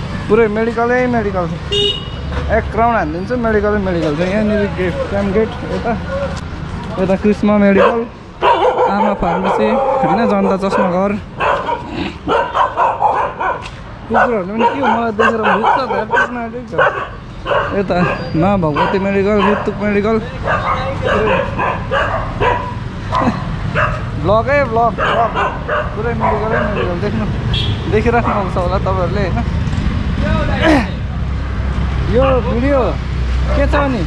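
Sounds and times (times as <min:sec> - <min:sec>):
voices: 0:00.0 - 0:34.0
dog barking and yipping: 0:07.7 - 0:24.2, 0:24.9 - 0:27.0.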